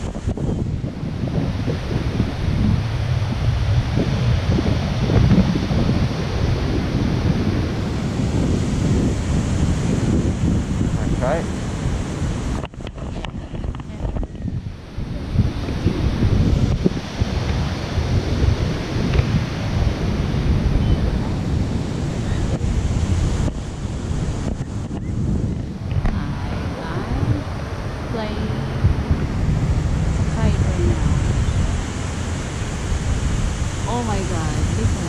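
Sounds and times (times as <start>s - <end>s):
ocean surf: 0.0s - 35.0s
wind buffeting microphone: 0.0s - 35.0s
faint voices: 25.9s - 29.3s.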